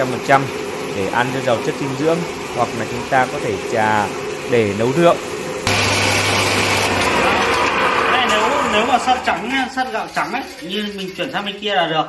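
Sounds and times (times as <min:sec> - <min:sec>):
rice huller machine whirring: 0:00.0 - 0:11.9.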